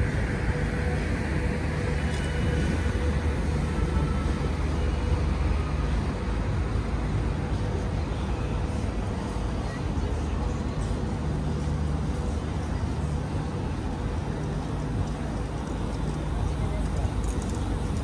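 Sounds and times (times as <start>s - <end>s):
continuous low rumble: 0.0s - 18.0s
faint steady hum: 0.0s - 18.0s
passers-by's voices: 0.0s - 18.0s.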